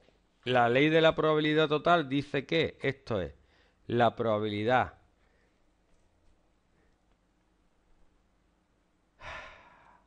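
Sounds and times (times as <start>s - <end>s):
man sighing into microphone: 9.2s - 10.0s.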